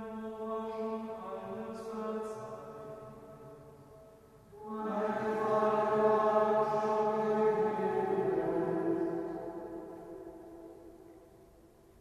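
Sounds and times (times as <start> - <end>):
voices chanting in unison: 4.6 - 10.5.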